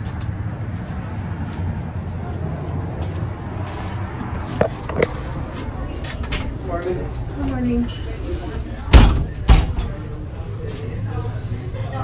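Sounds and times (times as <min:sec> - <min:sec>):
footsteps: 0:03.0 - 0:05.4
low rumble of handling: 0:04.2 - 0:06.3.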